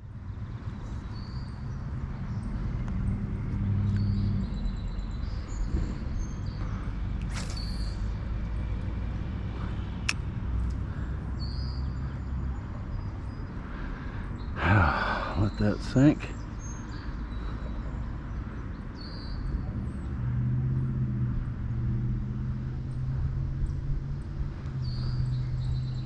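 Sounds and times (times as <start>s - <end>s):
bird chirps: 3.8s - 8.2s
sharp click: 7.2s - 8.0s.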